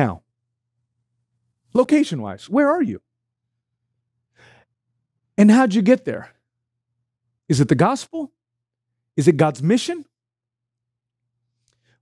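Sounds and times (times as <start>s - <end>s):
man breathing in: 4.3s - 4.8s.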